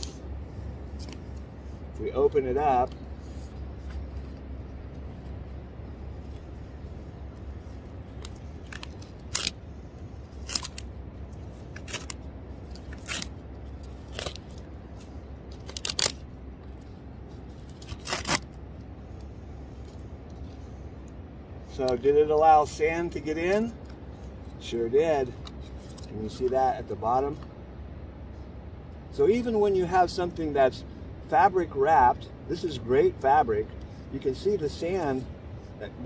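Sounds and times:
wet fabric crackling and scraping: 2.8 - 18.6.

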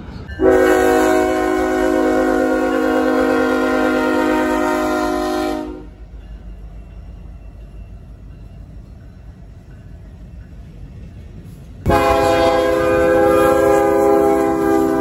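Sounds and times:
train rumbling past: 0.0 - 15.0
locomotive air horn: 0.4 - 6.0, 11.9 - 15.0.

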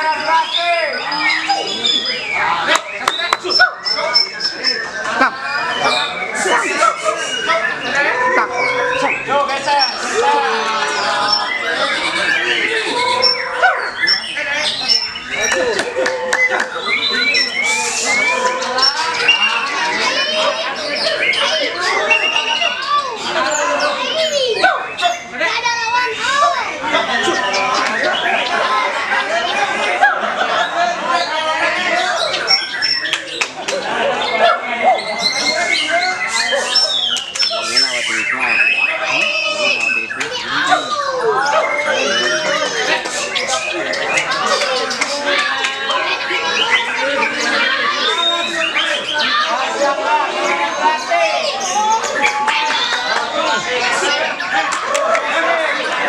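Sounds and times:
bird song whistles and chirps: 0.0 - 10.2, 10.9 - 15.7, 16.4 - 25.3, 32.0 - 33.4, 34.9 - 49.5
people talking and calling: 0.0 - 56.0
people's voices: 0.0 - 56.0
bird singing whistled glides: 16.4 - 20.2.

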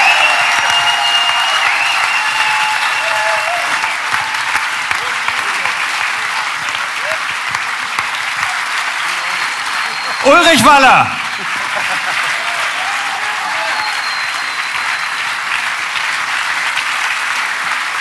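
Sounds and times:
audience applauding: 0.0 - 18.0.

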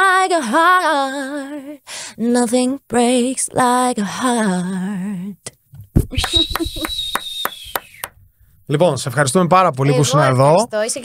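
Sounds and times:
hand clapping: 6.0 - 8.2
laughter: 6.1 - 7.1.

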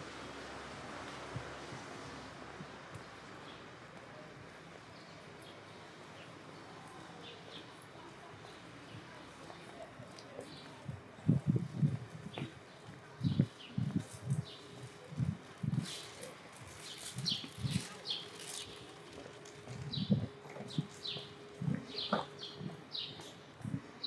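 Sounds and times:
footsteps on pavement: 1.0 - 24.0
small birds chirping: 16.8 - 18.9, 19.9 - 23.8.

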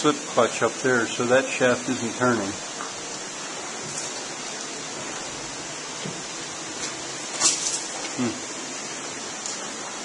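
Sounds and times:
running water rushing: 0.0 - 10.0.

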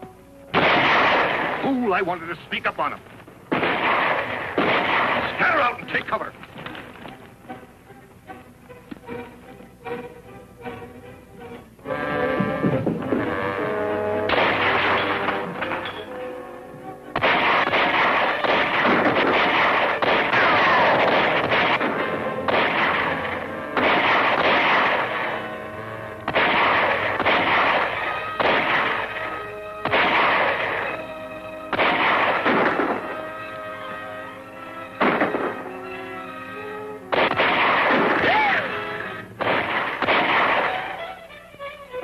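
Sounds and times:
orchestral film score: 0.0 - 42.0
rifle and pistol shots: 0.5 - 2.0, 3.5 - 6.8, 14.3 - 16.1, 17.2 - 25.6, 26.2 - 33.4, 35.0 - 35.8, 37.1 - 38.6, 39.4 - 41.0.

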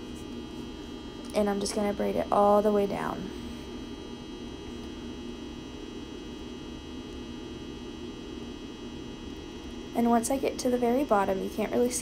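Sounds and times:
steady background hum with hiss: 0.0 - 12.0.

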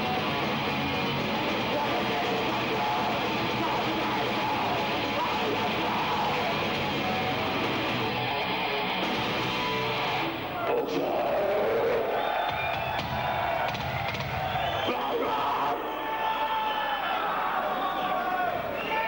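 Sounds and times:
bass guitar: 0.0 - 10.7
distorted electric guitars: 0.0 - 12.0
drums: 0.0 - 15.9
shouted vocals: 1.4 - 19.0.

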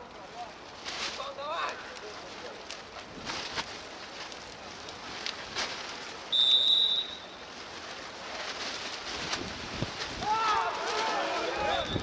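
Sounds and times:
outdoor hiss: 3.5 - 11.9
referee's whistle blast: 6.3 - 7.2, 11.7 - 12.0.

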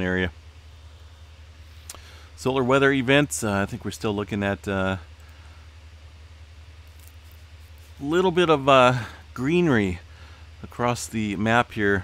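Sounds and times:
background hiss: 0.0 - 12.0
faint low hum: 0.0 - 12.0.

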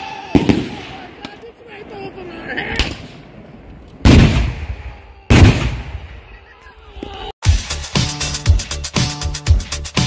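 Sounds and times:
loud explosions: 0.2 - 1.3, 4.0 - 6.2.

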